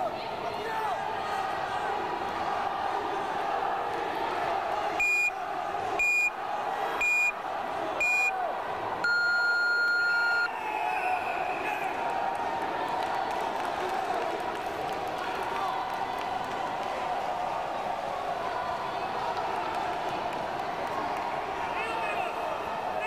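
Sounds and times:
timer short high beeps: 9.0s - 10.5s.

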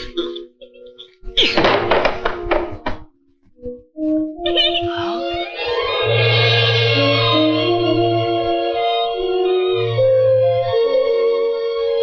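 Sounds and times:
film music: 0.0s - 12.0s.

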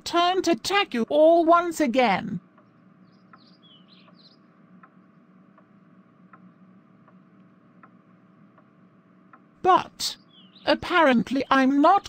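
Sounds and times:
soft ticking: 2.4s - 9.5s
faint bird chirps: 2.6s - 5.2s, 10.1s - 10.8s.

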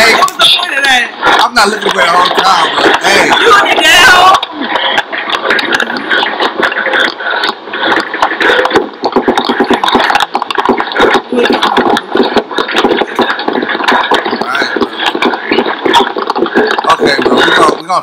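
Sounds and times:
distorted voices chanting: 0.0s - 17.8s
crackling clicks: 3.8s - 18.0s.

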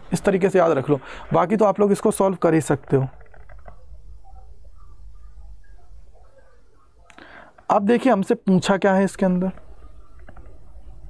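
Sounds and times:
faint indistinct sounds: 0.0s - 11.0s
steady low background hum: 0.0s - 11.0s.

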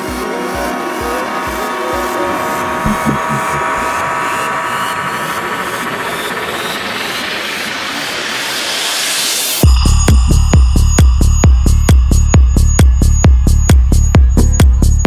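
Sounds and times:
sustained synth tones: 0.0s - 8.3s
kick drum: 2.8s - 3.8s, 9.6s - 15.0s.

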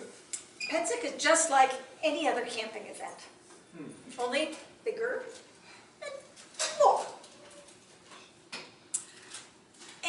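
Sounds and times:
woman talking: 0.7s - 3.3s, 4.1s - 5.4s, 6.6s - 7.2s.

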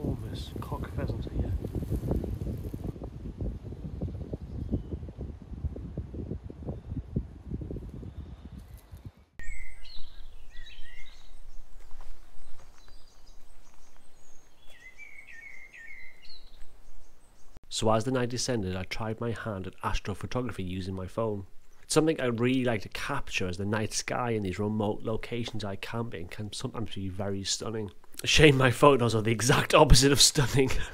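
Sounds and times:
wind buffeting microphone: 0.0s - 17.4s
songbirds chirping: 7.9s - 30.9s.

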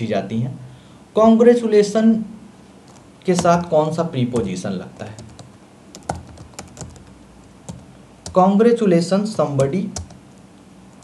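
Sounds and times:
man speaking: 1.2s - 2.4s, 3.2s - 5.3s, 8.3s - 10.0s
keyboard key clicks: 3.3s - 3.7s.

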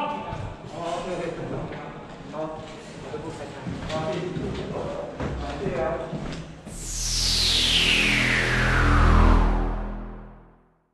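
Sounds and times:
deep steady drone: 6.7s - 10.6s
whoosh falling in pitch: 6.7s - 10.6s.

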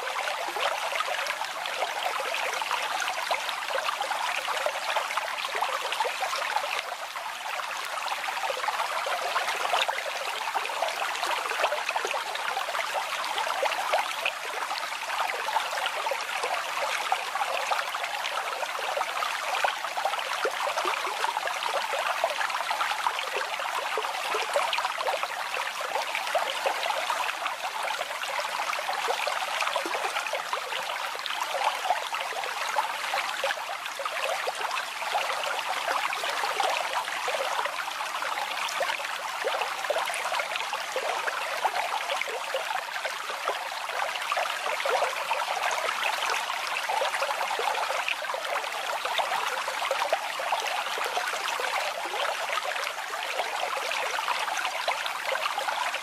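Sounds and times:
babbling brook water: 0.0s - 56.0s.

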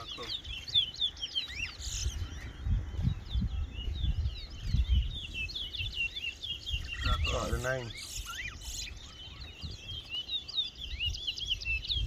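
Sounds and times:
finch singing: 0.0s - 12.0s.

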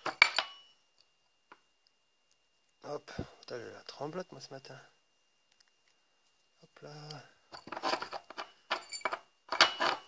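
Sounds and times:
metal screws clinking in tin: 7.6s - 10.0s.

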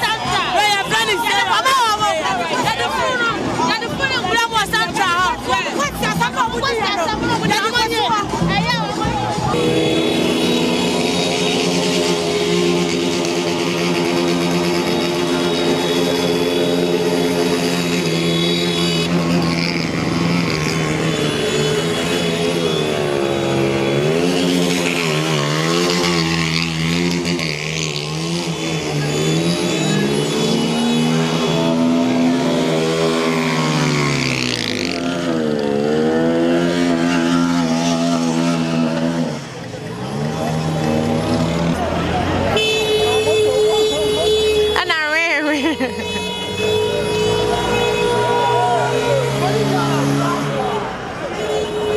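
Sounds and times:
motorcycle engines revving: 0.0s - 51.9s.

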